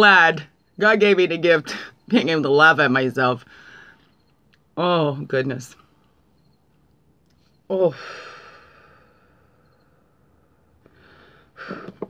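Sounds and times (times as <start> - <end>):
woman sighing: 7.7 - 9.2.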